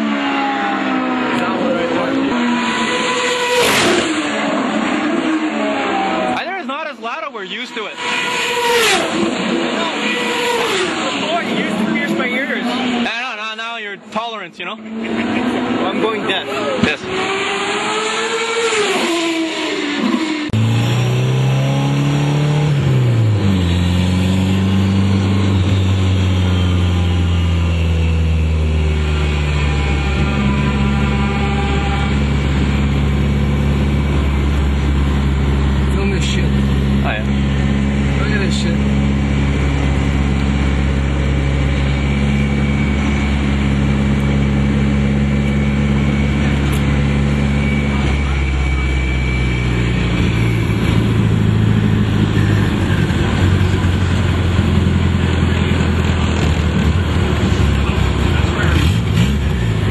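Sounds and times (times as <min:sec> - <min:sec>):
car engine drone from inside: 0:00.0 - 0:06.4, 0:14.8 - 0:59.9.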